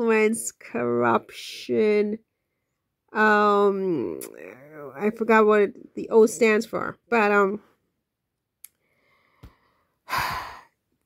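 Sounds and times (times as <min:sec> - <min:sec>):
person sighing: 0:10.1 - 0:10.7.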